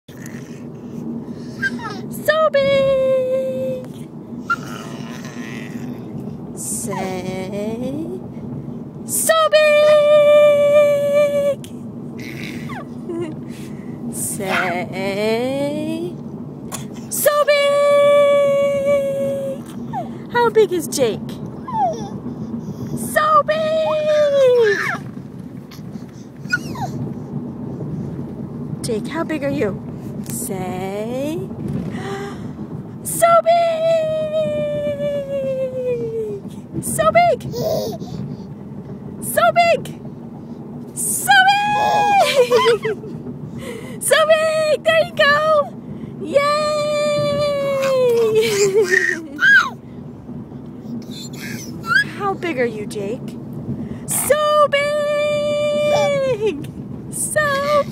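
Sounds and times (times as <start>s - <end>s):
car cabin rumble: 0.1s - 57.9s
baby squealing: 1.6s - 2.0s, 4.4s - 6.0s, 12.2s - 12.9s, 21.6s - 22.2s, 24.5s - 25.0s, 26.5s - 27.0s, 41.7s - 42.9s, 47.8s - 49.8s, 51.0s - 52.2s, 57.5s - 57.9s
high vocal sound: 14.2s - 15.9s, 47.2s - 49.8s, 51.0s - 52.5s, 55.7s - 56.5s, 57.2s - 57.9s.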